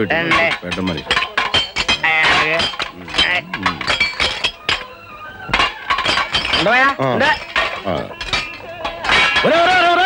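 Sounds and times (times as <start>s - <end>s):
voices talking: 0.0s - 5.6s
metal plates clinking: 0.0s - 10.0s.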